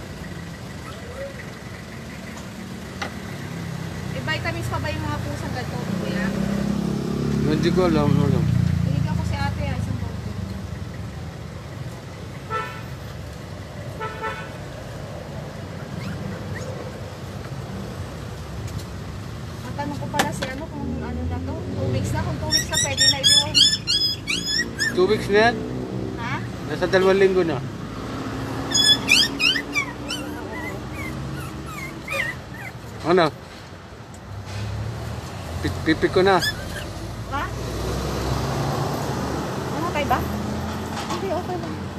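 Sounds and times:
puppy whimpering and yelping: 0:00.8 - 0:01.4, 0:15.8 - 0:17.0, 0:22.4 - 0:25.3, 0:28.6 - 0:33.0, 0:36.3 - 0:37.1.

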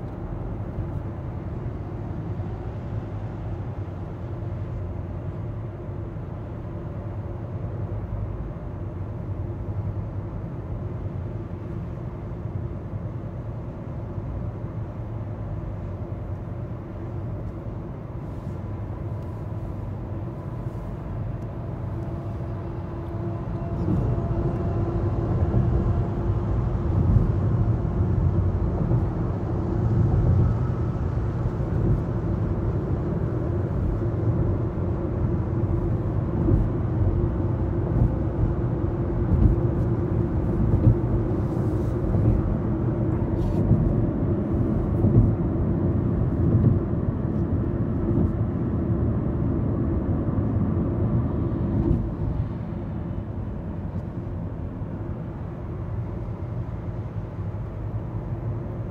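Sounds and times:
car road noise inside cabin: 0:00.0 - 0:58.9.

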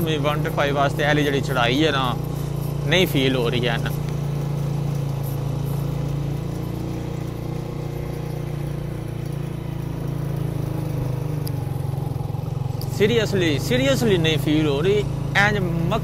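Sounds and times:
motorcycle engine pulling uphill: 0:00.0 - 0:16.0.

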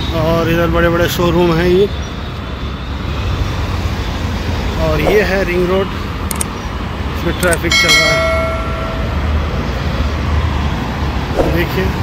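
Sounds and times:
cars and scooters passing: 0:00.0 - 0:12.0.

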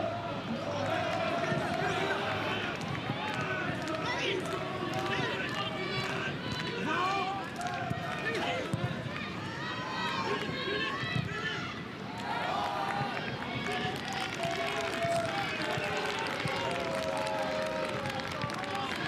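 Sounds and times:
stadium ambience: 0:00.0 - 0:19.0.

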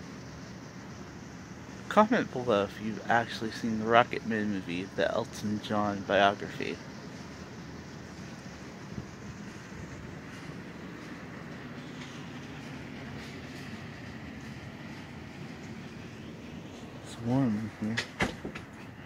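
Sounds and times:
low room rumble and hum: 0:00.0 - 0:19.0.

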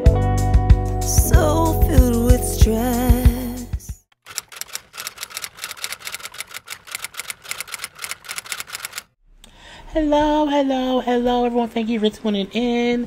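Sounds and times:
typewriter key clacks: 0:04.3 - 0:09.1.

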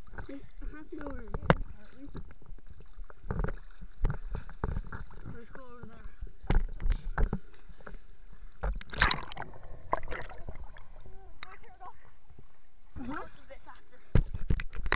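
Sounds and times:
water splashing and lapping: 0:00.0 - 0:14.9.

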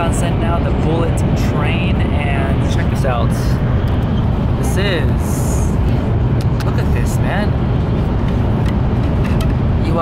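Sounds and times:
train low rumble: 0:00.0 - 0:10.0.

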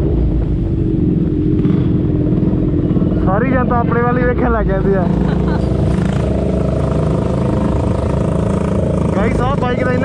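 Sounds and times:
motorcycle engine at low revs: 0:00.0 - 0:10.0
man laughing: 0:05.0 - 0:05.9
man talking: 0:09.2 - 0:10.0.

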